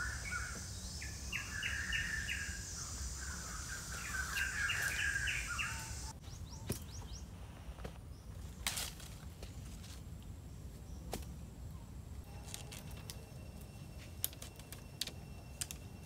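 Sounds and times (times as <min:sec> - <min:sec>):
wooden poles clicking and knocking: 0:14.0 - 0:16.0.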